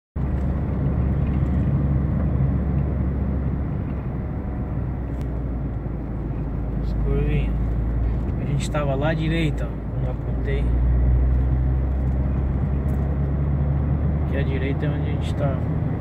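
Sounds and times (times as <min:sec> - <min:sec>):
car engine and tyre rumble: 0:00.2 - 0:16.0.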